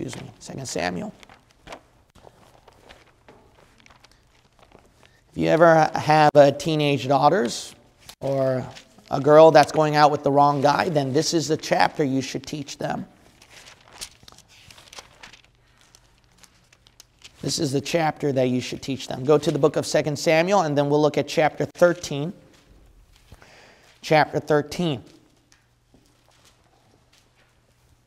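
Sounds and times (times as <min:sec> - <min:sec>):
page snap: 0:00.0 - 0:00.4
thin paper pages rustling: 0:00.0 - 0:05.8, 0:07.4 - 0:11.4, 0:13.2 - 0:17.6, 0:25.1 - 0:28.0.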